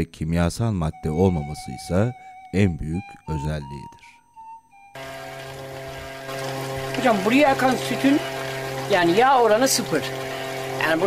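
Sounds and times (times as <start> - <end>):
cream separator humming: 5.0 - 11.0
milk streaming from spout: 5.0 - 11.0.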